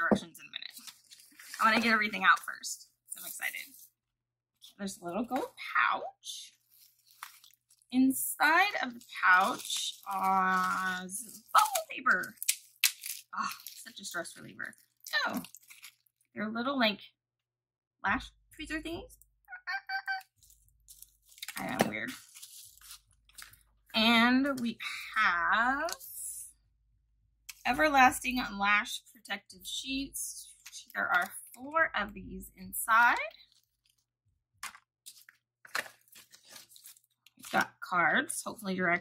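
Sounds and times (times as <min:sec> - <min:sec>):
paper and packaging rustling: 0:00.2 - 0:03.9, 0:06.5 - 0:16.2, 0:20.3 - 0:23.7, 0:34.6 - 0:37.7
woman making squeaky vocal noise: 0:19.5 - 0:20.3.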